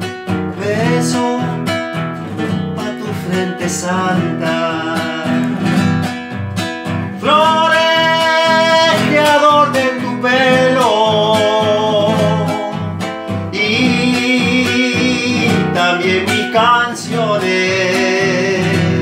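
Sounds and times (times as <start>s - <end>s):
nylon-string guitar: 0.0s - 19.0s
man singing: 0.5s - 6.4s, 7.1s - 19.0s.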